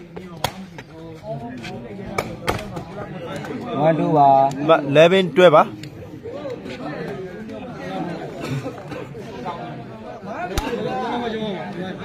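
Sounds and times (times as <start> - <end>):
spectators chattering: 0.0 - 12.0.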